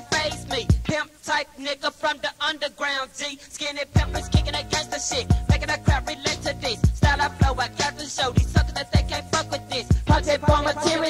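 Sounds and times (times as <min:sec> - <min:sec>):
hip hop beat with bass: 0:00.0 - 0:02.5, 0:03.2 - 0:11.0
person rapping: 0:00.0 - 0:11.0.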